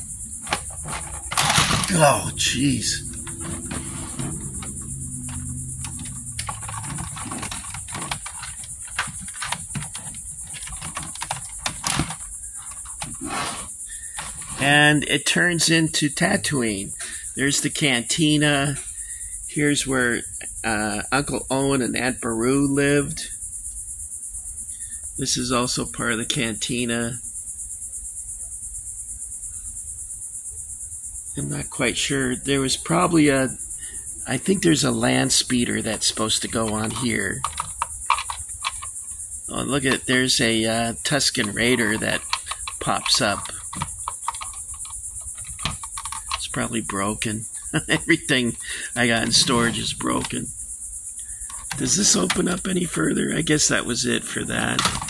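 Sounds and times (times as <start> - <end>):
high-pitched insect trill: 0.0 - 55.0
plastic toy parts clicking: 0.4 - 2.0, 4.4 - 13.2, 36.4 - 39.0, 41.3 - 46.6, 51.5 - 52.5, 54.7 - 55.0
low background rumble: 1.2 - 9.0.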